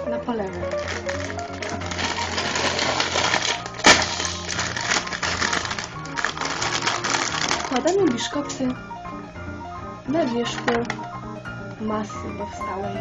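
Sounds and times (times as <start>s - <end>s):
blues background music: 0.0s - 13.0s
plastic packet crinkling: 0.4s - 8.8s.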